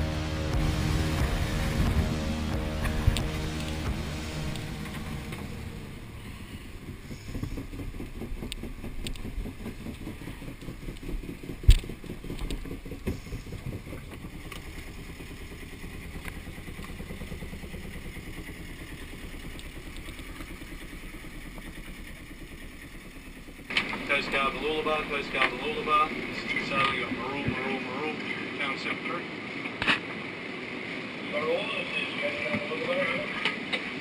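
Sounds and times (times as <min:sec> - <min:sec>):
boat engine low throb: 0:00.0 - 0:28.8.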